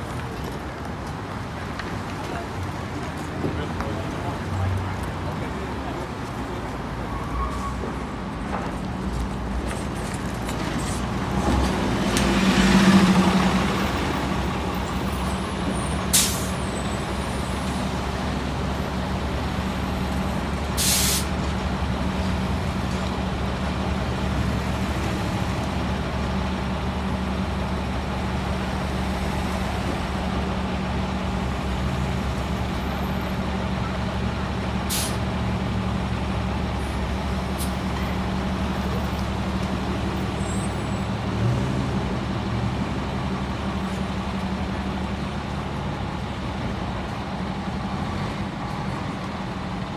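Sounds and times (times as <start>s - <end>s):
bus engine idling: 8.4s - 49.9s
compressed air hisses: 20.8s - 21.3s.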